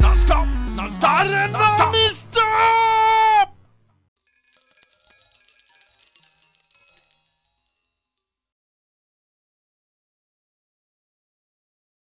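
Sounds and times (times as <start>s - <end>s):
shimmering chime: 4.2s - 8.6s.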